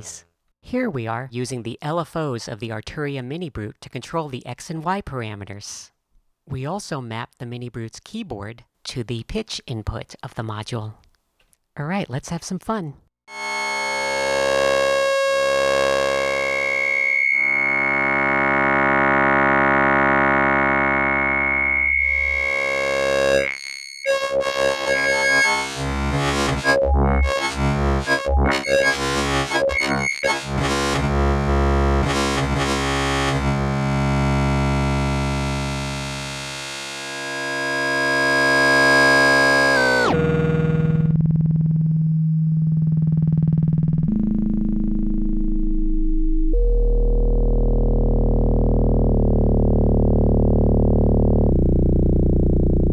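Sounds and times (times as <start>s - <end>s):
morphing synthesizer tone: 13.3s - 32.7s, 37.9s - 52.3s.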